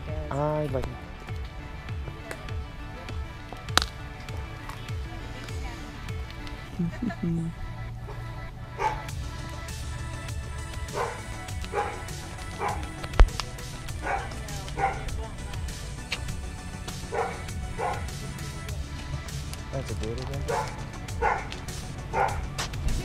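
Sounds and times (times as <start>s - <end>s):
dog barking: 8.1s - 9.1s, 10.9s - 13.0s, 13.9s - 15.3s, 17.0s - 18.4s, 20.4s - 22.6s.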